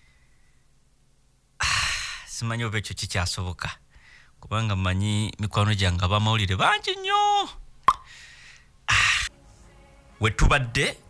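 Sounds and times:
breath hiss: 1.6s - 2.4s, 8.0s - 9.6s.

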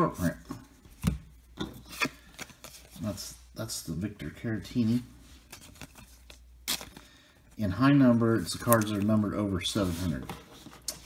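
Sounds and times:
cards sliding and rubbing: 0.1s - 3.3s, 8.6s - 11.0s
crisp card rustle: 4.8s - 7.3s, 8.1s - 11.0s.

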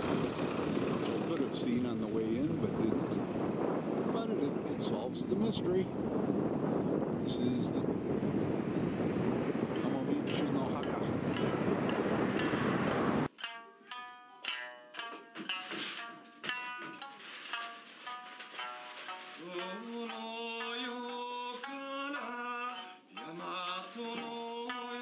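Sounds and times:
wind buffeting microphone: 0.0s - 13.3s
held musical tone: 9.7s - 25.0s
plucked string notes: 9.7s - 25.0s.

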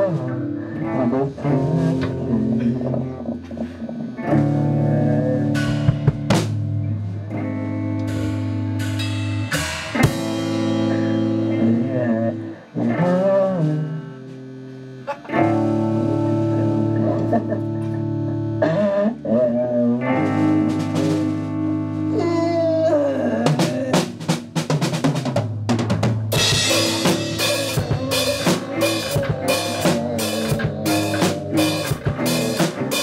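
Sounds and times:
person singing: 0.0s - 5.8s, 10.8s - 14.2s, 15.0s - 20.7s, 22.0s - 24.2s, 26.5s - 33.0s
electric guitar chords: 0.0s - 24.7s, 26.0s - 33.0s
bass guitar: 0.0s - 33.0s
sharp drum hits: 26.0s - 33.0s.

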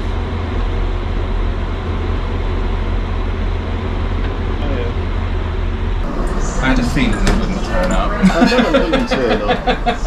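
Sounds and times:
stationary train rumbling: 0.0s - 10.0s
faint voices: 6.1s - 10.0s.

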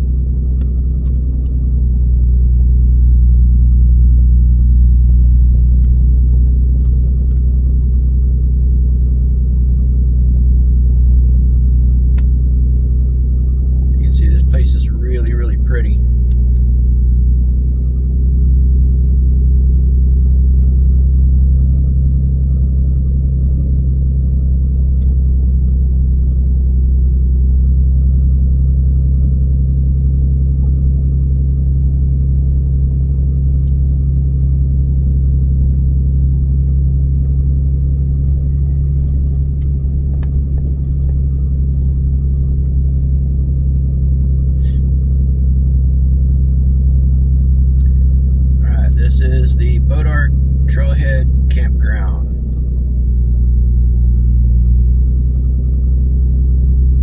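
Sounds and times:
engine and road drone: 0.0s - 57.0s.

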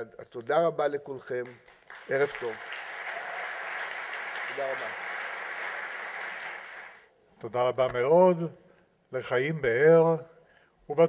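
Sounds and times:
audience applauding: 1.4s - 7.1s.

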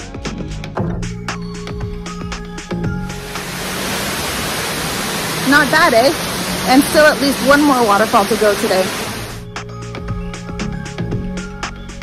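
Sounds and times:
waterfall rushing: 3.1s - 9.5s.

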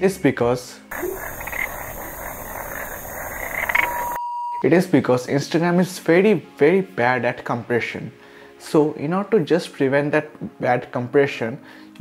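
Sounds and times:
steady harsh hiss: 0.9s - 4.2s.

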